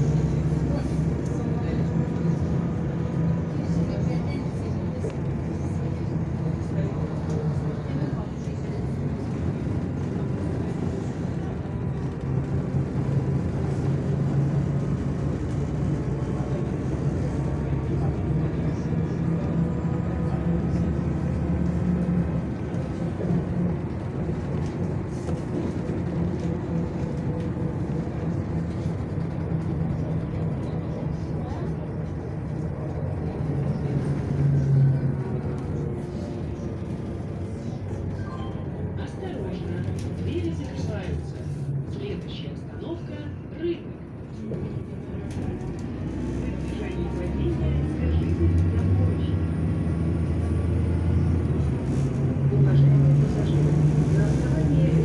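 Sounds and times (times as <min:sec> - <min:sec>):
bus engine drone: 0:00.0 - 0:55.0.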